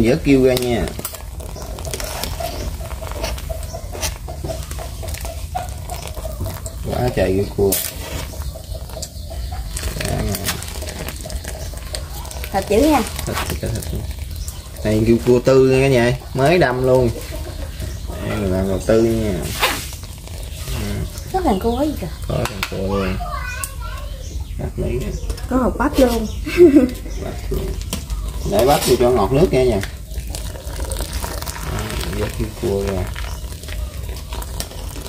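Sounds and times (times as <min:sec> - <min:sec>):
broth boiling with bubbles: 0:00.0 - 0:25.4, 0:26.8 - 0:35.0
adults talking: 0:03.4 - 0:30.1
child calling out: 0:22.9 - 0:24.4.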